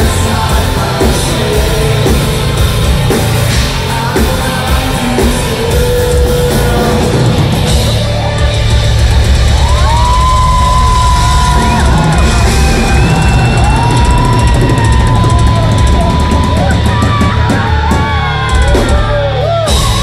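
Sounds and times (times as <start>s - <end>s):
heavy metal band playing live: 0.0s - 20.0s.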